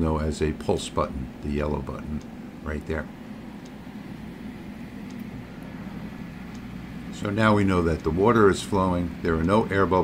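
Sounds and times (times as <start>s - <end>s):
cooling fans: 0.0s - 10.0s
laser cutter humming: 0.0s - 10.0s.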